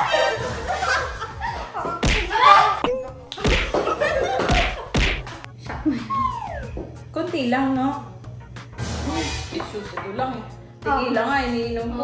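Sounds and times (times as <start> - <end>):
women laughing and shrieking: 0.0 - 2.8
hand slaps: 2.0 - 2.4, 3.3 - 3.8, 4.4 - 5.5.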